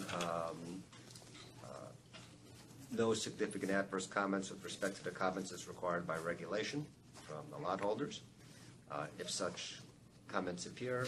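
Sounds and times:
man speaking: 0:00.0 - 0:00.9, 0:01.6 - 0:02.0, 0:02.9 - 0:08.3, 0:08.9 - 0:11.0
conference room background: 0:00.0 - 0:11.0.

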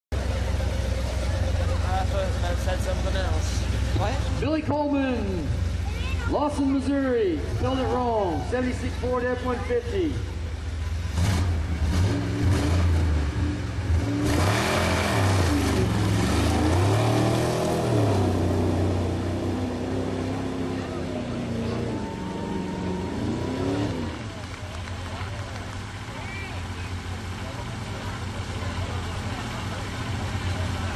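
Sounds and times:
truck engine rumbling: 0:00.1 - 0:30.9
man speaking over loudspeaker: 0:01.6 - 0:10.3.

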